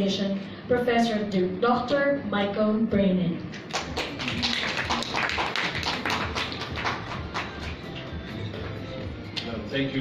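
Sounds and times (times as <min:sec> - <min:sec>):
audience applauding: 0:03.6 - 0:08.8.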